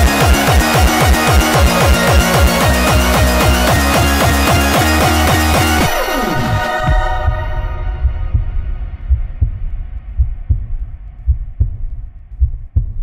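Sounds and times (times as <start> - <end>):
heartbeat thumps: 6.4 - 13.0.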